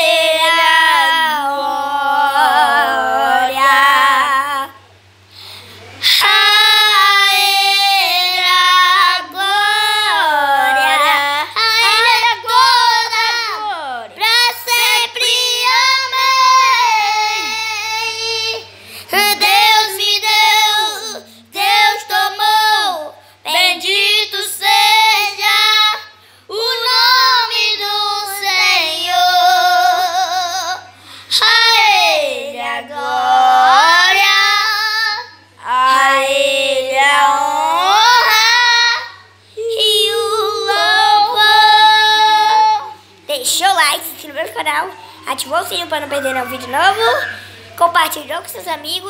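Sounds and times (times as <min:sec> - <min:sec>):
children singing unaccompanied: 0:00.0 - 0:04.8, 0:06.1 - 0:43.0.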